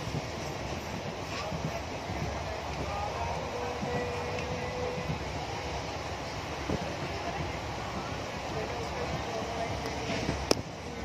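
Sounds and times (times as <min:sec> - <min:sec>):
train carriage rumbling on rails: 0:00.0 - 0:11.0.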